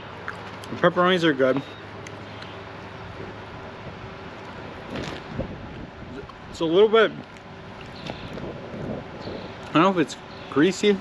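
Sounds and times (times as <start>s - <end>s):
rustle: 1.4s - 11.0s
wind on microphone: 4.8s - 6.6s, 7.9s - 9.6s.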